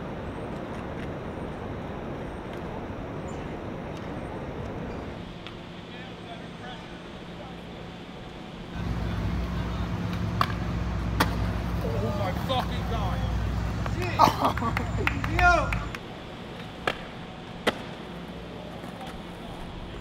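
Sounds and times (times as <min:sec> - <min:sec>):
city street traffic: 0:00.0 - 0:20.0
skateboard clacks: 0:09.4 - 0:20.0
people shouting and cheering: 0:11.8 - 0:16.0.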